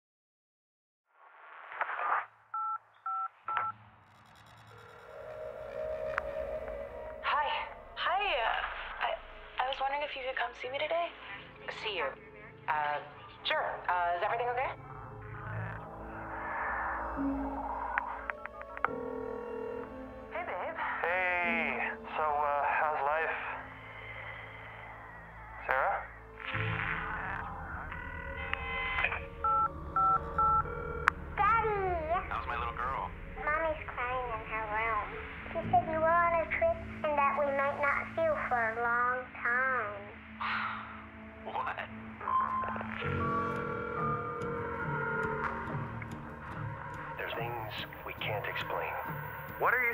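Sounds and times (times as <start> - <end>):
keypad beeps: 2.6 - 3.7, 28.6 - 30.7
held electronic tone: 3.6 - 9.0, 26.4 - 31.7
low electronic drone: 3.7 - 9.9, 13.8 - 39.0, 39.7 - 49.9.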